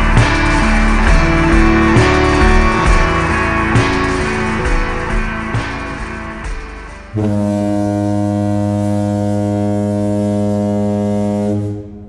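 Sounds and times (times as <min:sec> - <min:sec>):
ship's horn deep blast: 0:07.2 - 0:12.0.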